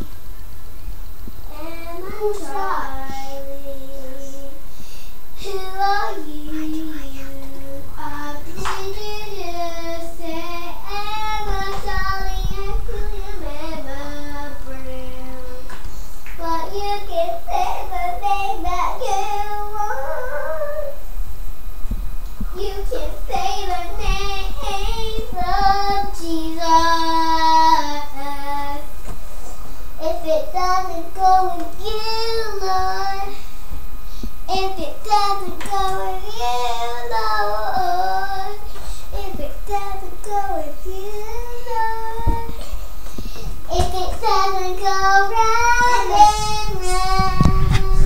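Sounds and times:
girl singing: 0:01.4 - 0:04.8, 0:05.4 - 0:15.7, 0:16.3 - 0:21.1, 0:22.4 - 0:28.9, 0:30.0 - 0:33.4, 0:34.5 - 0:48.0.

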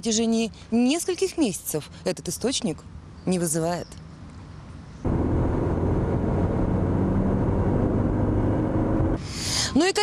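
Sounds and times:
car driving on road: 0:05.0 - 0:09.3.

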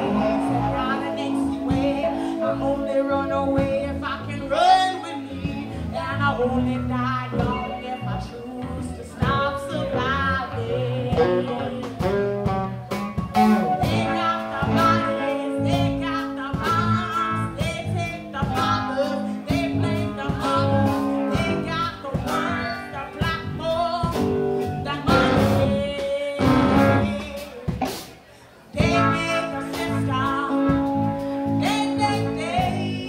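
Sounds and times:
person singing: 0:00.0 - 0:28.0, 0:28.8 - 0:33.0
live band playing guitar music: 0:00.0 - 0:33.0.

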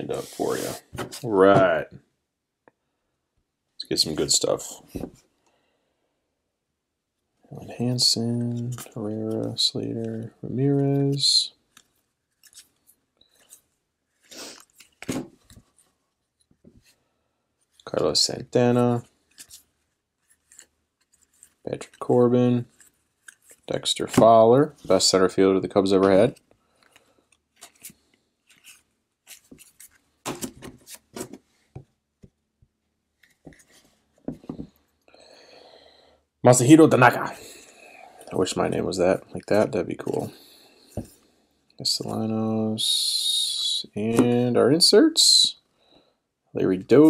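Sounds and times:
card sliding: 0:00.1 - 0:01.2, 0:27.6 - 0:31.5
cards rubbing and flicking: 0:00.1 - 0:01.2, 0:27.5 - 0:31.6
cards rustling as flipped: 0:08.4 - 0:17.0, 0:19.2 - 0:25.1, 0:25.9 - 0:31.8.

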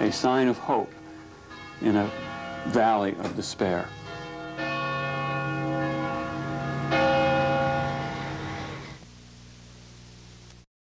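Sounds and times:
church bell ringing: 0:00.0 - 0:09.0
faint hum: 0:05.0 - 0:10.7.

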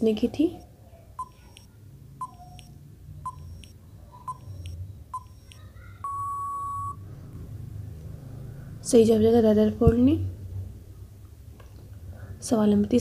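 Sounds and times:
long steady beep: 0:00.6 - 0:07.0
short beeping ticks: 0:00.6 - 0:07.0.

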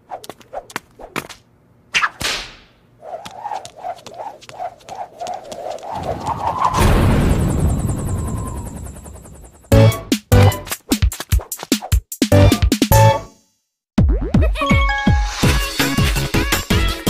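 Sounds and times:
rope crack and swish: 0:00.0 - 0:06.9
quick tones rising in pitch: 0:05.9 - 0:10.0.

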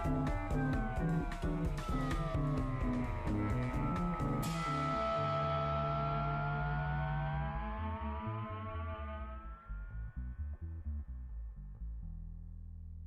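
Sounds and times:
sustained synthesizer tones: 0:00.0 - 0:12.0
low pulsing bass notes: 0:00.0 - 0:13.0.

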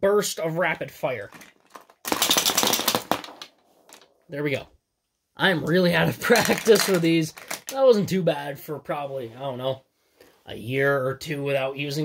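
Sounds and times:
toy marble shooter rattling: 0:01.3 - 0:04.0, 0:06.4 - 0:07.8.

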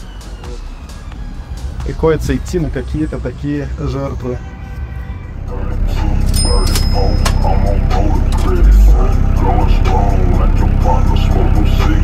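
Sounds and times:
loud music with pulsing bass: 0:00.0 - 0:03.0, 0:07.6 - 0:12.0
vocals in music: 0:00.0 - 0:12.0.

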